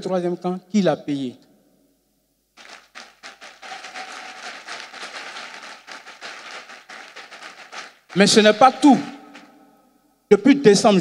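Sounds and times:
group of people clapping: 2.6s - 9.6s.

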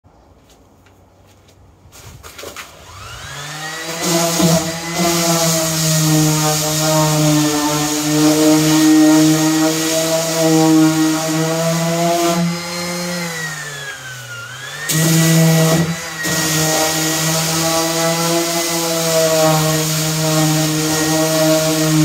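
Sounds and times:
electric orbital sander running: 2.7s - 22.0s
abrasive hiss of sanding: 3.6s - 14.3s, 14.9s - 22.0s.

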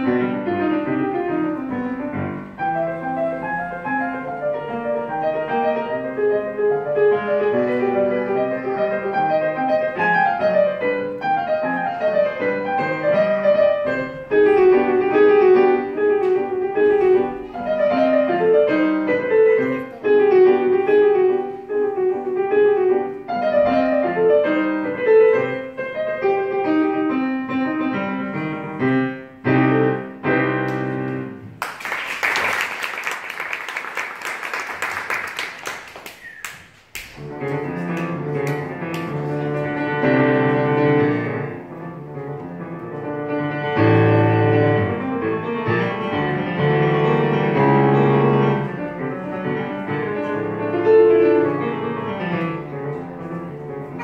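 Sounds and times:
solo digital piano: 0.0s - 31.6s, 37.2s - 54.0s.

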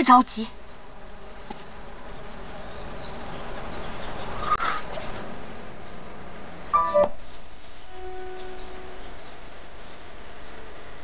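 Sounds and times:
brief brighter sound: 6.8s - 7.3s.

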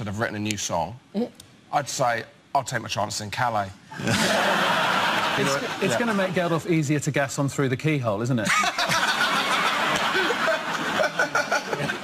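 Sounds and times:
studio audience laughing: 3.9s - 6.7s, 8.5s - 12.0s.

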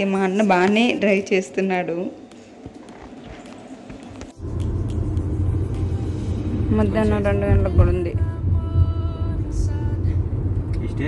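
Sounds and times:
car rumble inside cabin: 4.4s - 11.0s.

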